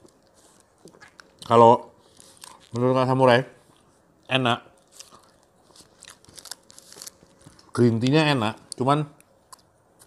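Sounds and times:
toast crunching: 0:04.7 - 0:08.1.

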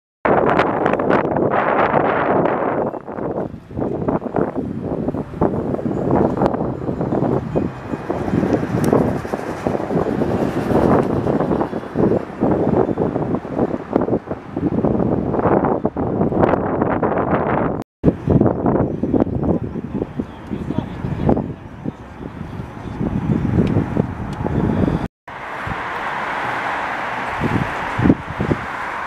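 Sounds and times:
wind buffeting microphone: 0:00.2 - 0:29.0.

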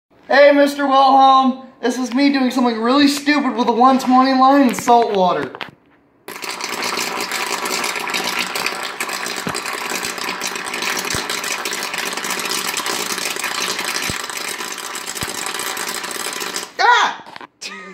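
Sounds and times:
electrical arcing crackling buzz: 0:06.2 - 0:17.5.

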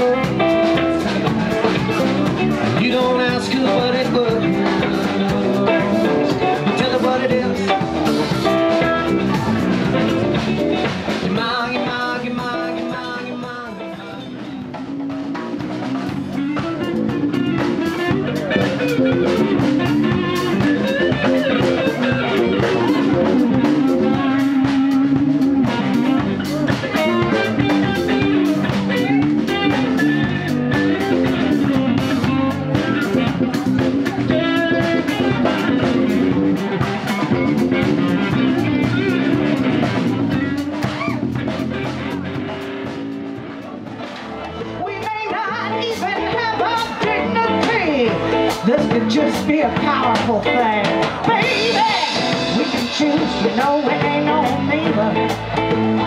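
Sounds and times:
drum kit: 0:00.0 - 0:56.0
electric bass: 0:00.0 - 0:56.0
electric guitar: 0:00.0 - 0:56.0.

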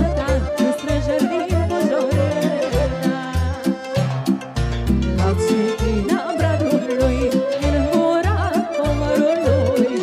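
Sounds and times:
folk dance band music: 0:00.0 - 0:10.0.

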